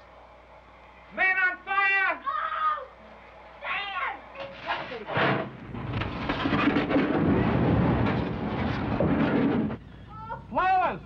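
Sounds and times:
person's high cry: 2.2 - 2.9
large fire roaring: 5.3 - 9.8.

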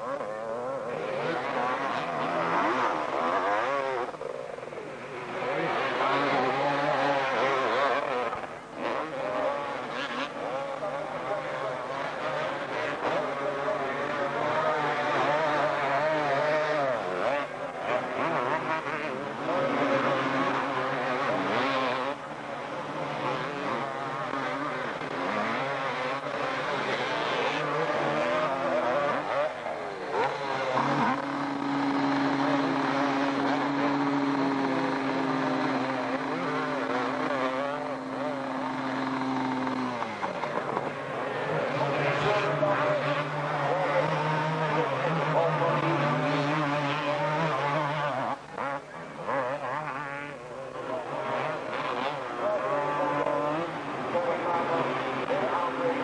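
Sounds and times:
motocross bikes revving: 0.0 - 56.0.

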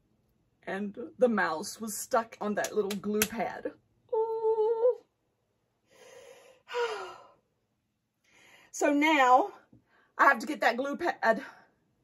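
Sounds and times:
woman sighing: 6.0 - 7.4.

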